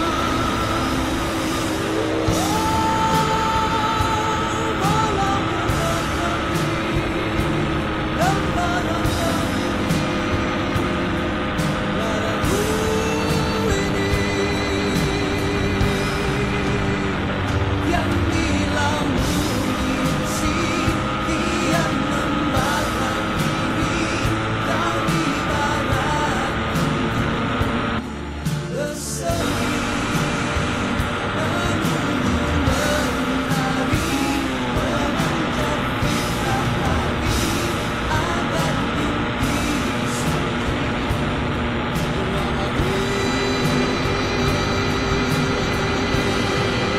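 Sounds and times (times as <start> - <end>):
background music: 0.0 - 46.9
riding noise rushing: 0.0 - 46.9
song with singing voice: 0.0 - 46.9.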